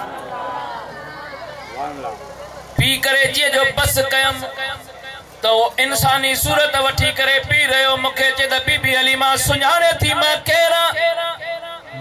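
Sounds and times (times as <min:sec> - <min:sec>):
man speaking over public address: 0:01.8 - 0:12.0.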